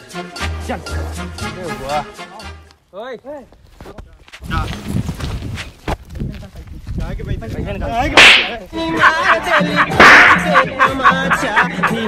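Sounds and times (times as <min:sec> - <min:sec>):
whip crack: 0:08.1 - 0:08.6, 0:10.0 - 0:10.5
pitched musical notes: 0:09.7 - 0:11.1.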